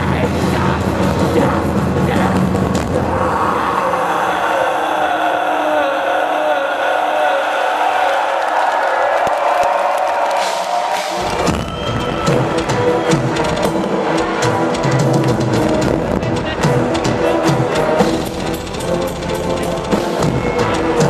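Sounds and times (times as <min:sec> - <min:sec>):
crowd cheering: 0:03.0 - 0:21.0
live metal band: 0:10.4 - 0:21.0
orchestral keyboard: 0:11.4 - 0:21.0.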